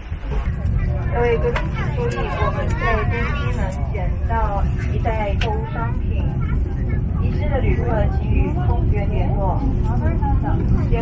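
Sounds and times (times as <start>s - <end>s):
low cabin rumble: 0.0s - 11.0s
passengers talking: 0.0s - 11.0s.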